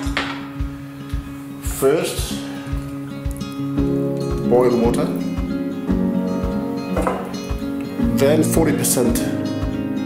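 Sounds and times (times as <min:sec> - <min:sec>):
acoustic folk guitar: 0:00.0 - 0:10.0.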